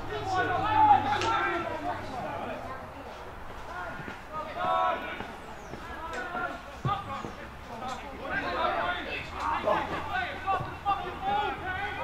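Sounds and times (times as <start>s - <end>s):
distant players shouting: 0.0s - 2.7s, 3.5s - 12.0s.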